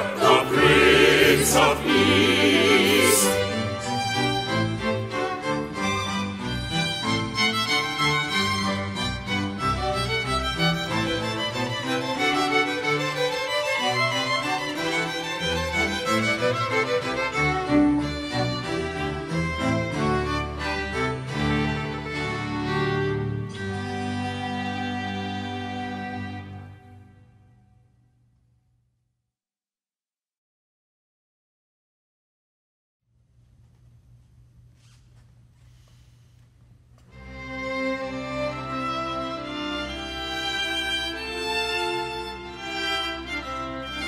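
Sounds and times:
bowed double bass: 0.0s - 12.4s
violins playing melody: 0.0s - 27.4s, 37.1s - 44.0s
cellos: 0.0s - 28.0s, 34.6s - 44.0s
soft rustles: 33.5s - 37.2s.

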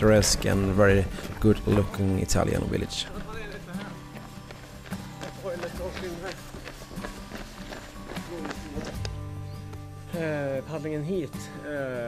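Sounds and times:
footsteps jogging on pavement: 0.0s - 9.8s
background music: 0.0s - 12.0s.

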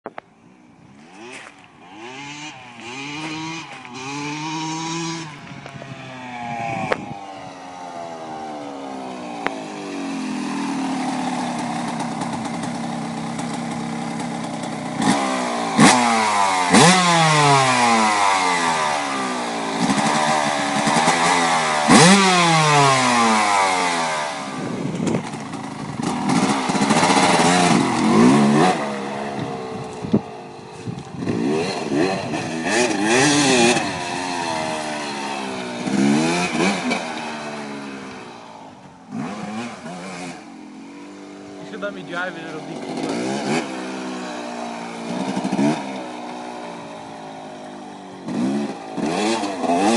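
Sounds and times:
dirt bike engine revving: 1.0s - 49.9s.

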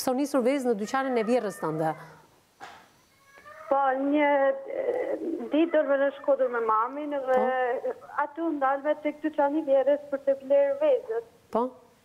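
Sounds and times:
woman speaking: 0.0s - 2.2s, 3.7s - 11.8s.

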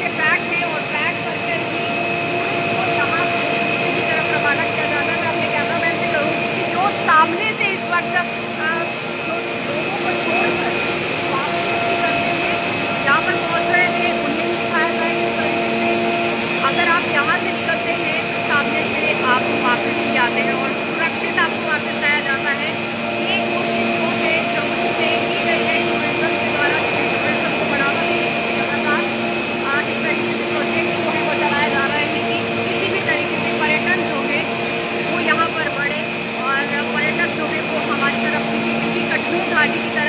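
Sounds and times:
high whine: 0.0s - 40.0s
mechanical hum of drive machinery: 0.0s - 40.0s
voices chattering: 0.0s - 40.0s.

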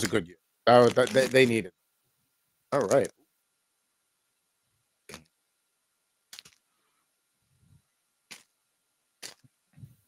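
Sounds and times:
wrapper crinkling: 0.7s - 1.6s, 6.4s - 6.6s, 9.2s - 9.4s.

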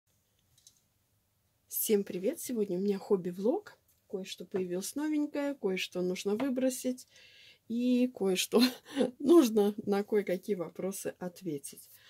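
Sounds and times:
woman speaking: 1.7s - 7.1s, 7.7s - 12.0s.

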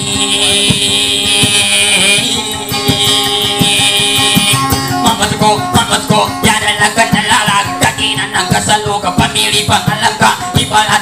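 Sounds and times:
amplified guitar rhythm: 0.0s - 11.0s.

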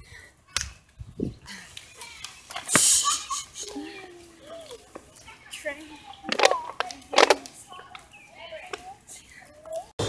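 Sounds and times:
young children chattering: 1.4s - 10.0s
children calling out: 1.5s - 10.0s.

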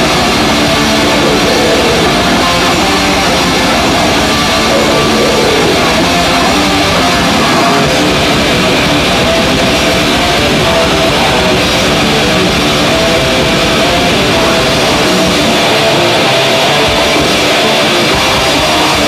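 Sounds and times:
death metal band playing live: 0.0s - 19.0s
distorted electric guitar: 0.0s - 19.0s
drum kit: 0.0s - 19.0s.

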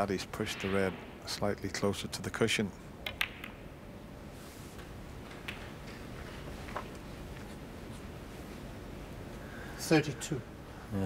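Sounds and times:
snooker balls clicking together: 3.0s - 3.8s, 5.2s - 7.0s.

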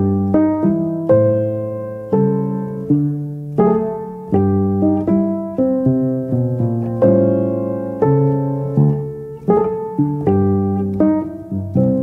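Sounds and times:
solo piano chords: 0.0s - 12.0s.

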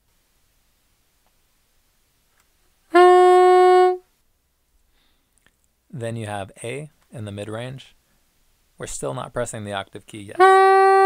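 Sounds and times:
soprano saxophone held note: 2.9s - 4.0s, 10.4s - 11.0s.

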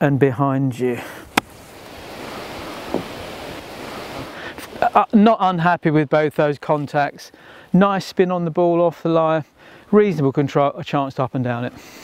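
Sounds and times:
wind: 0.0s - 12.0s
sea surf: 1.4s - 5.0s.

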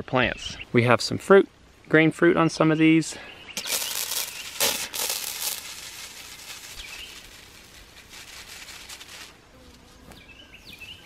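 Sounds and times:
sprayer nozzle hissing: 3.6s - 8.1s.

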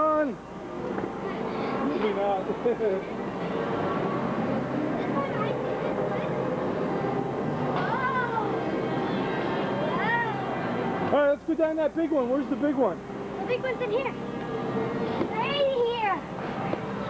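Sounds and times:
many children's voices: 3.4s - 11.1s, 12.6s - 17.0s.

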